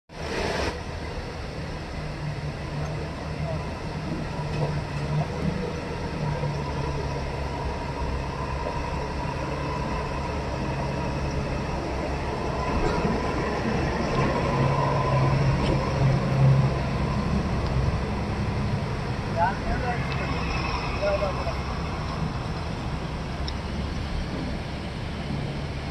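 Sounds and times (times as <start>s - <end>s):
truck engine on rough road: 0.1s - 25.9s.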